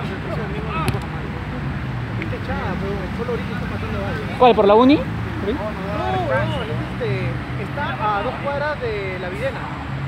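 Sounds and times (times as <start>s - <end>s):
players calling out: 0.0s - 1.5s, 3.9s - 8.5s.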